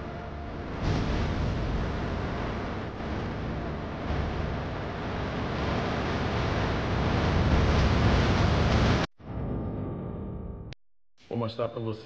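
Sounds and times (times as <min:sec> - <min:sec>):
low rumble: 0:00.0 - 0:10.8.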